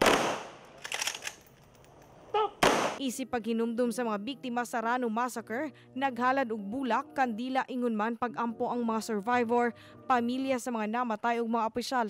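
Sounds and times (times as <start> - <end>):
rifle volley blast: 0.0 - 0.8, 2.6 - 3.0.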